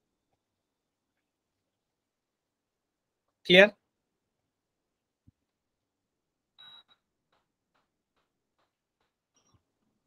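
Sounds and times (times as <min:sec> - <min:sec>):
faint high-pitched beep: 0:06.6 - 0:07.0.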